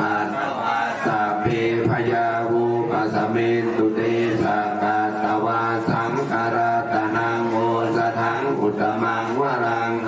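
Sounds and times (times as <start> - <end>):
men chanting: 0.0 - 10.0.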